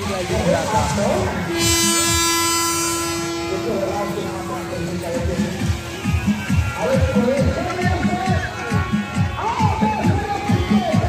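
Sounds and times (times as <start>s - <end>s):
crowd noise: 0.0s - 11.0s
horn blowing long note: 0.0s - 11.0s.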